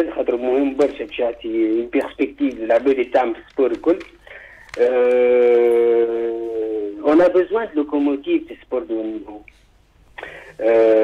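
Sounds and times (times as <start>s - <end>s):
man's hesitation vowel over telephone: 10.6s - 11.0s.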